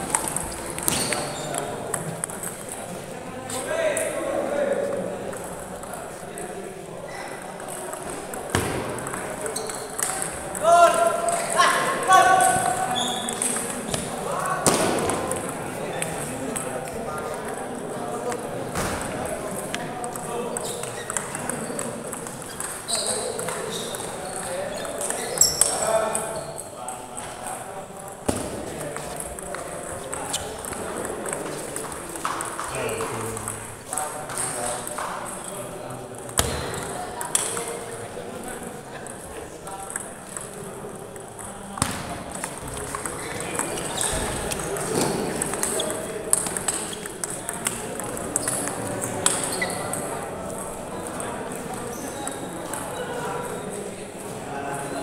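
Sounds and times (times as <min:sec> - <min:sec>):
table tennis balls clicking: 0:00.0 - 0:02.9, 0:07.4 - 0:11.6, 0:19.0 - 0:26.3, 0:28.0 - 0:35.5, 0:39.8 - 0:51.2
murmur of people talking: 0:00.0 - 0:55.0.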